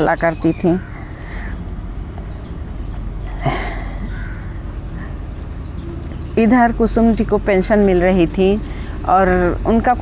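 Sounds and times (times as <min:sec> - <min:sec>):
low outdoor rumble: 0:00.0 - 0:10.0
crow cawing faintly: 0:00.8 - 0:06.3.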